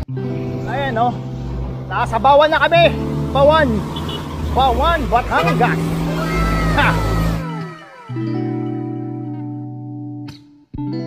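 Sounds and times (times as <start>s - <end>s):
road noise rumble: 0.0s - 9.2s
background music: 0.0s - 10.4s
guitar music: 0.0s - 11.0s
people's voices: 1.9s - 8.2s.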